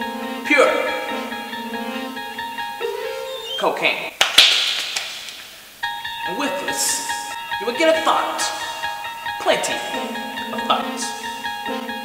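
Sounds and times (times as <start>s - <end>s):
backing music: 0.0s - 4.1s, 5.8s - 12.0s.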